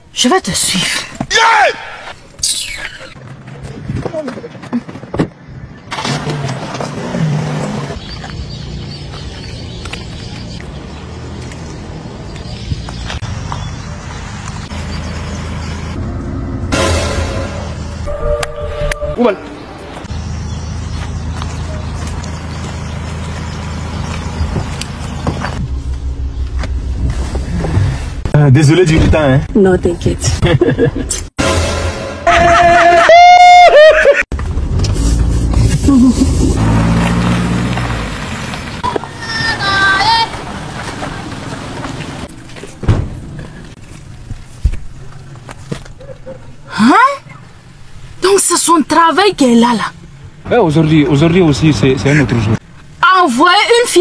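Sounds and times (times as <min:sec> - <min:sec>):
road noise: 0:00.0 - 0:54.0
car engine drone: 0:05.6 - 0:18.5, 0:19.3 - 0:28.4, 0:34.3 - 0:45.6
car engine running: 0:20.1 - 0:27.8.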